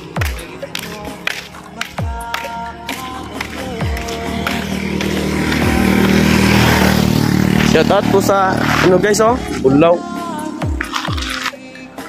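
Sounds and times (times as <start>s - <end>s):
small motorcycle engine running: 3.4s - 11.6s.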